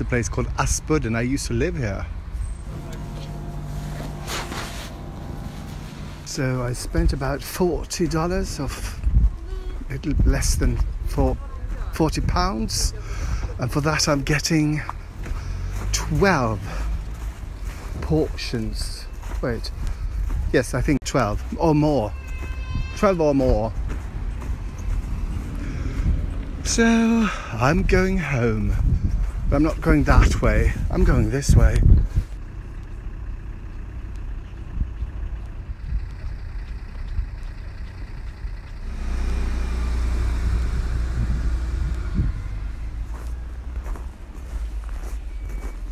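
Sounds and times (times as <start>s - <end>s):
low outdoor rumble: 0.0s - 21.8s, 23.6s - 45.9s
freezer hum: 2.7s - 7.2s.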